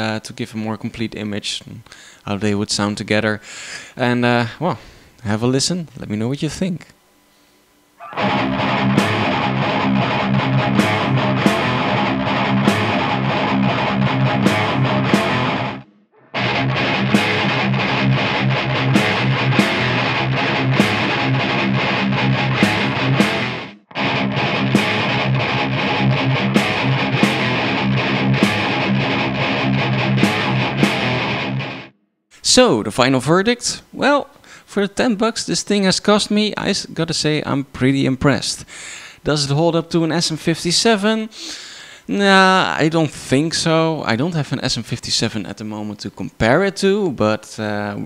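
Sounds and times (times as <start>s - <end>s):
distorted electric guitar: 8.0s - 32.0s
snare drum hits: 28.4s - 28.7s.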